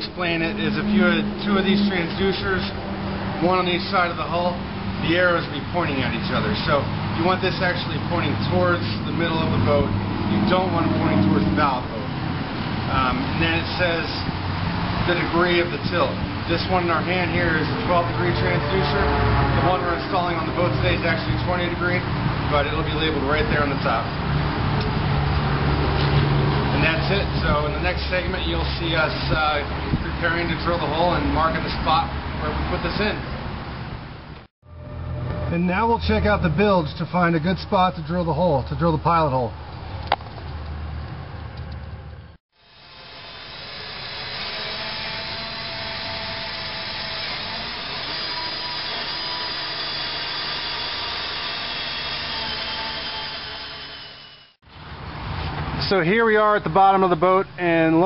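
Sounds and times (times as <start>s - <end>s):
person speaking: 0.0s - 2.8s
power drill boring into fiberglass: 42.6s - 54.6s.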